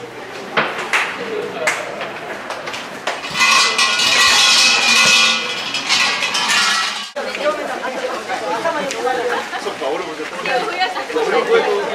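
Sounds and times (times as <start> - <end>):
crowd chatter: 0.0 - 6.6, 7.2 - 11.9
shrine bells jangling: 3.2 - 7.2.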